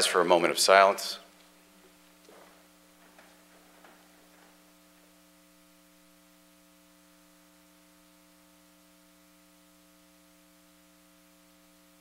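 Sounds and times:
electrical mains hum: 0.0 - 12.0
faint knocks of chairs: 2.3 - 4.7.

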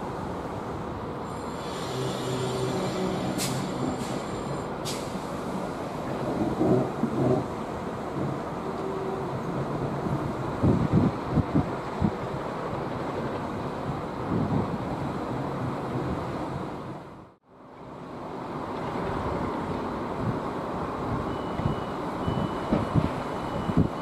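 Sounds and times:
wind buffeting microphone: 3.6 - 17.3, 18.7 - 24.0
steady rumble: 5.4 - 17.3.

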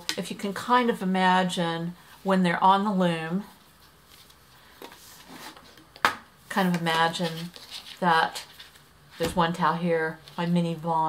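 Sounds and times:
soft fabric rustling: 3.2 - 5.8, 6.5 - 10.9.

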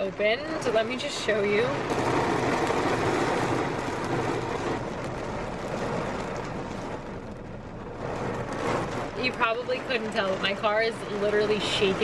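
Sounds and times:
heavy rain on car roof: 0.0 - 12.0.

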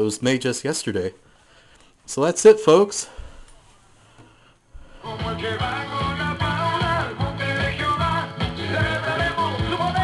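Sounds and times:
music from radio: 4.9 - 10.0.

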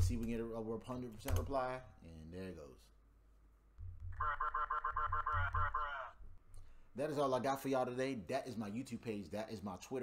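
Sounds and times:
man laughing: 4.2 - 6.1.

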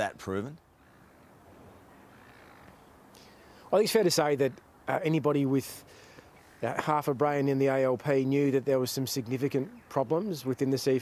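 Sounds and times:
crow cawing: 0.7 - 3.6.

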